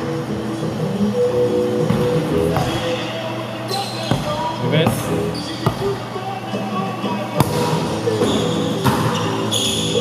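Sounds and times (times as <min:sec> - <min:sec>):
background music: 0:00.0 - 0:10.0
voices: 0:02.0 - 0:10.0.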